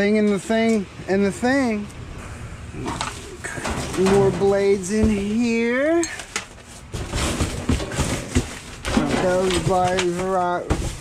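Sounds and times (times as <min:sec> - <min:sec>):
cardboard boxes being shifted: 0:03.0 - 0:11.0
plastic bags rustling: 0:03.0 - 0:11.0.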